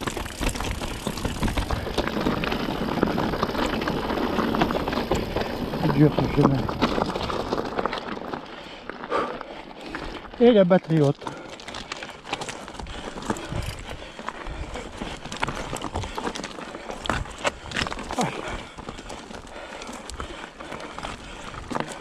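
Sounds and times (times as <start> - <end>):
bike rattling: 0.0 - 22.0
tyres crunching over loose stones: 0.0 - 22.0
wheels knocking on rocks: 0.0 - 22.0.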